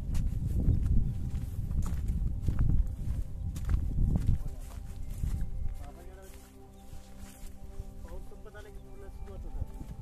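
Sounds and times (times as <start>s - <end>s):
wind buffeting microphone: 0.0s - 6.0s, 6.7s - 10.0s
footsteps on dirt path: 0.0s - 10.0s.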